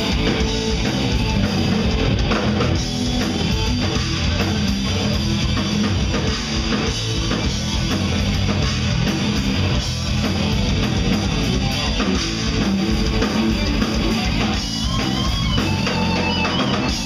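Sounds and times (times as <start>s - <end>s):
heavy metal band playing live: 0.0s - 17.0s
high wavering guitar line: 0.0s - 17.0s.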